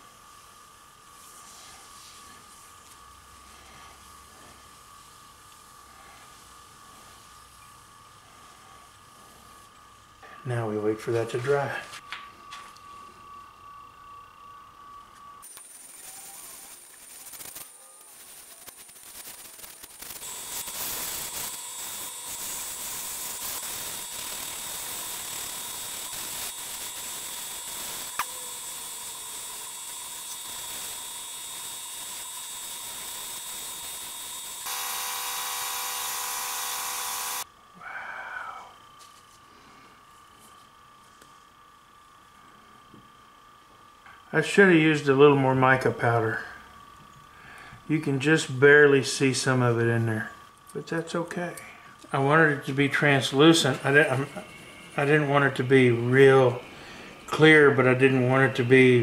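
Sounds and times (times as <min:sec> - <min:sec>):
sanding hiss: 0:00.0 - 0:10.0, 0:15.6 - 0:37.5
lathe whining: 0:12.0 - 0:37.5.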